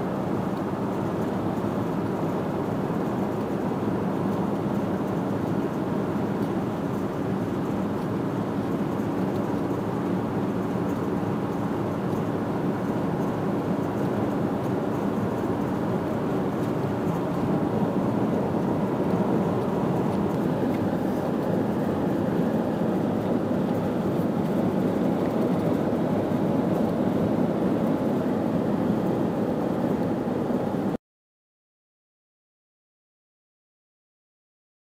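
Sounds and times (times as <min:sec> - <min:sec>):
car road and engine noise: 0:00.0 - 0:31.0.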